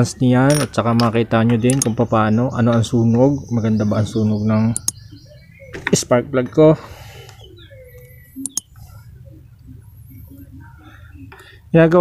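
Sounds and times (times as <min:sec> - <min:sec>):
sharp metal clicks: 0:00.5 - 0:02.0, 0:04.8 - 0:05.0, 0:08.0 - 0:08.8.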